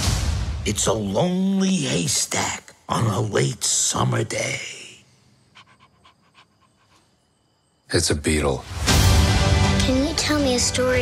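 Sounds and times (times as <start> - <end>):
dog panting softly: 5.6 - 7.0.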